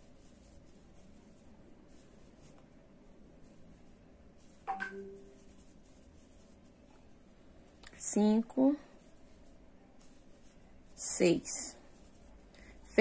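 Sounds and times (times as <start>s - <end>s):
crochet hook scratching yarn: 0.0s - 2.8s, 3.4s - 7.2s, 7.8s - 13.0s.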